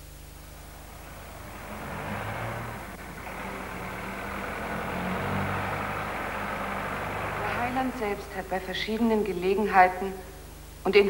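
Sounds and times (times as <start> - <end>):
car engine approaching: 0.0 - 9.3.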